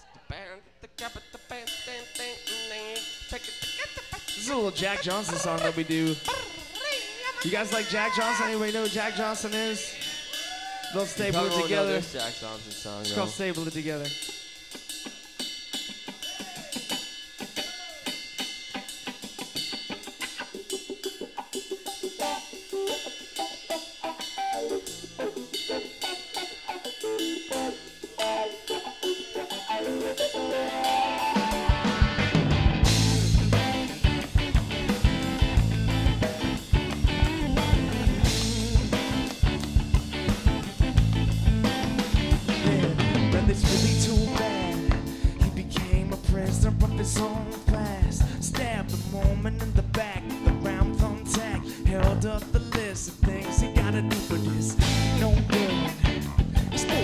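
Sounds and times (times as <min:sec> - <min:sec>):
drum kit playing groove: 0:01.0 - 0:57.0
live band playing: 0:01.1 - 0:57.0
bass guitar: 0:03.4 - 0:57.0.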